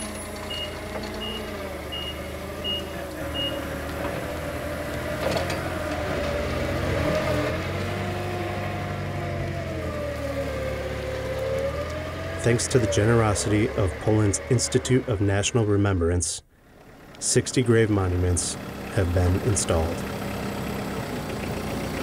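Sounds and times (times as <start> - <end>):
forklift engine running: 0.0 - 22.0
reversing alarm beeps: 0.5 - 3.7.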